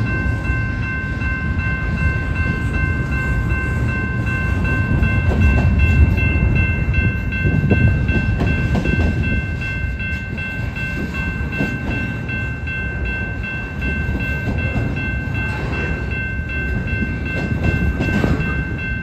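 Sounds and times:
clanks from train wheels: 0:00.0 - 0:19.0
freight train rumbling past: 0:00.0 - 0:19.0.

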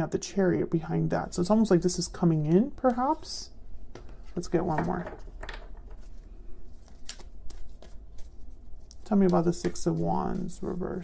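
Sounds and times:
low steady hum: 0:00.0 - 0:11.0
cards being shuffled: 0:03.9 - 0:11.0.

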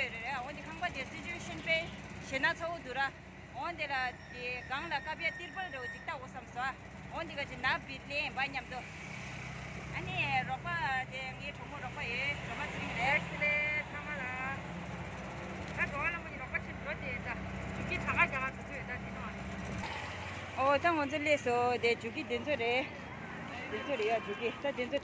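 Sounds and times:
women talking: 0:00.0 - 0:08.9, 0:09.9 - 0:14.6, 0:15.8 - 0:19.4, 0:20.6 - 0:25.0
vehicle hum: 0:00.0 - 0:25.0.

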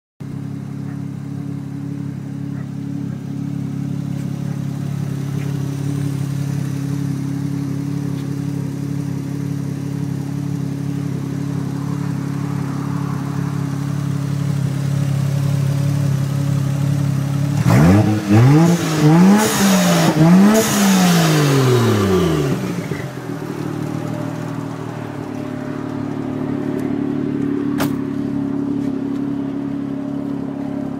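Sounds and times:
car engine idling and revving: 0:00.2 - 0:30.9.

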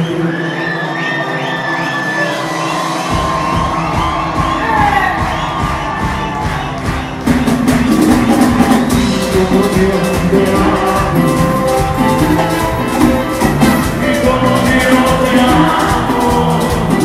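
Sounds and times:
crowd cheering and whooping: 0:00.0 - 0:09.0
live band music: 0:00.0 - 0:17.0
bass and drum beat: 0:03.0 - 0:17.0.

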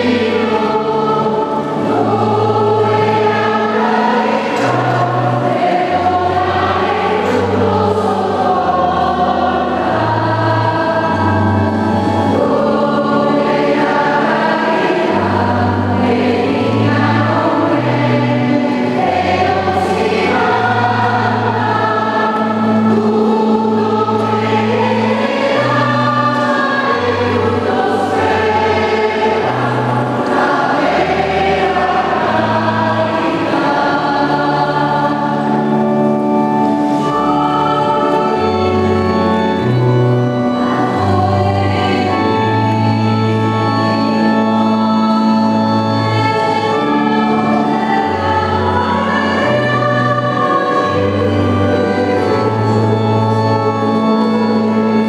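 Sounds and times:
choir singing a hymn: 0:00.0 - 0:55.0
organ bass notes: 0:00.0 - 0:55.0.

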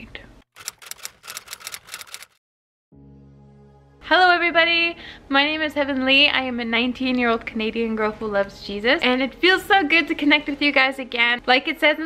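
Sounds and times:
typewriter key strikes: 0:00.6 - 0:02.4.

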